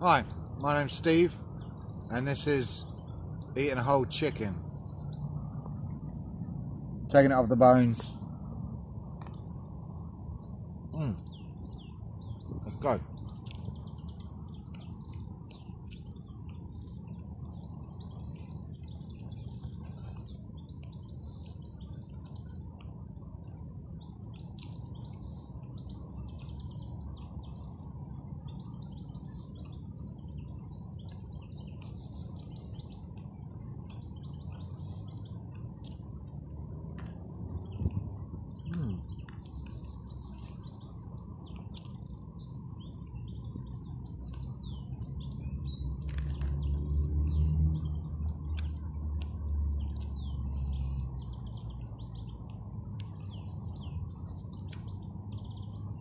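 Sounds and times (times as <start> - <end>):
small birds chirping: 0.0 - 56.0.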